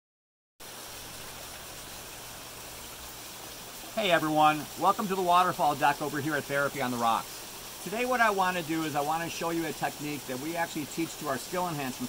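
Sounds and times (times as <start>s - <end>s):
water rushing over rocks: 0.6s - 12.0s.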